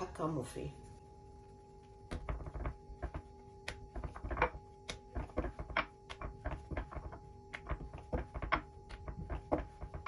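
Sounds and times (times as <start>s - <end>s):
hands patting dough on wood: 1.7s - 10.0s.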